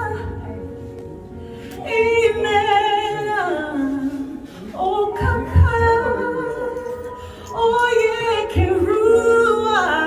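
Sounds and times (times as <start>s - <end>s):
woman singing gospel: 1.8s - 10.0s.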